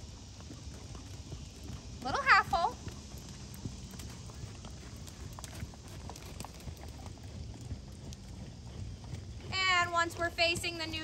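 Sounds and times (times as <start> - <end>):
horse hooves trotting on sand: 0.0 - 11.0
low steady background rumble: 0.0 - 11.0.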